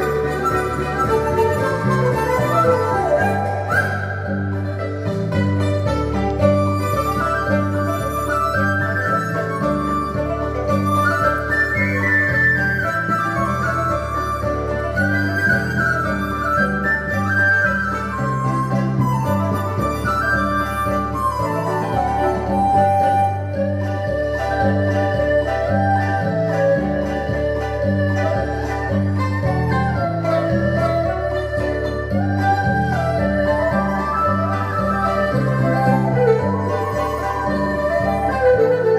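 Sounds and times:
bamboo flute melody: 0.0s - 38.9s
bowed string instrument: 0.0s - 38.9s
plucked lute: 0.0s - 38.9s.

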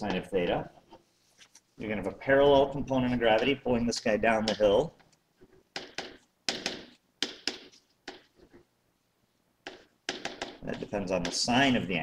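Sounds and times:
stylus tapping on tablet: 5.7s - 8.5s, 9.6s - 11.5s.

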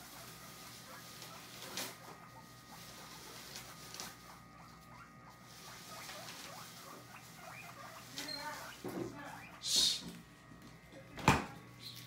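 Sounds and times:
guinea pig long loud call: 0.0s - 10.2s
guinea pigs squeaking: 0.0s - 12.0s.

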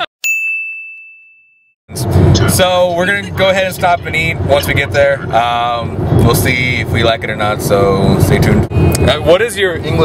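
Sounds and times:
bright ding: 0.2s - 1.7s.

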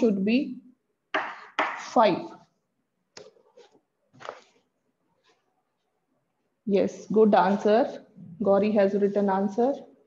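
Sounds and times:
woman speaking: 0.0s - 0.7s, 1.8s - 2.4s, 6.7s - 10.0s.

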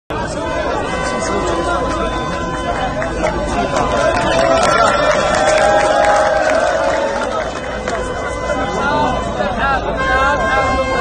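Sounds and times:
crowd of men talking: 0.1s - 11.0s.

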